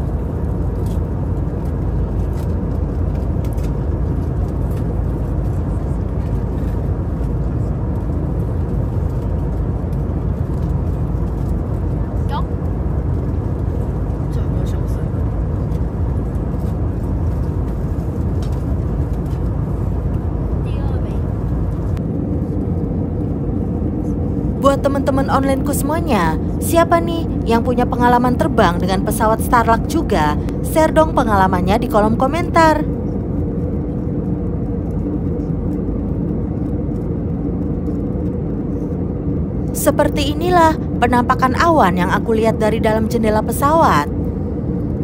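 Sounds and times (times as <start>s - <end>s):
jet airliner cabin noise: 0.0s - 45.0s.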